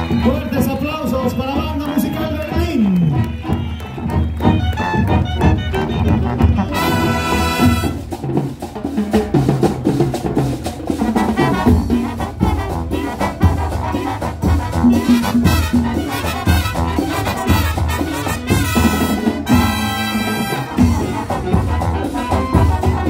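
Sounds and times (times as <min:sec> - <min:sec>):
trumpets and trombones: 0:00.0 - 0:08.9, 0:10.8 - 0:23.0
drum line beat: 0:00.0 - 0:23.0
marching band playing: 0:00.0 - 0:23.0.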